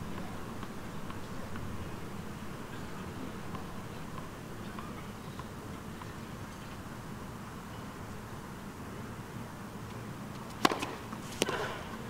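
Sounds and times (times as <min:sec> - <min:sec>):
tennis ball bouncing on court: 0:10.5 - 0:11.8.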